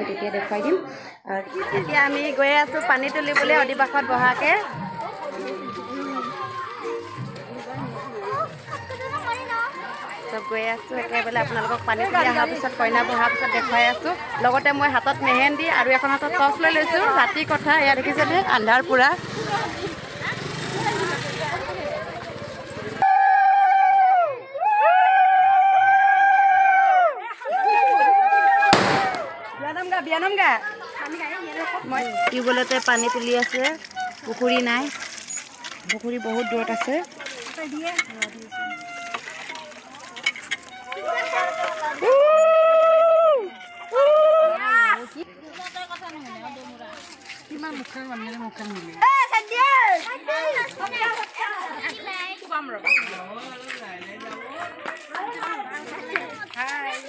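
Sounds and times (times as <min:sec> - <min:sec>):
children shouting: 0:03.4 - 0:14.5, 0:22.4 - 0:29.7, 0:40.7 - 0:45.0
women ululating: 0:23.0 - 0:29.3, 0:41.0 - 0:44.8.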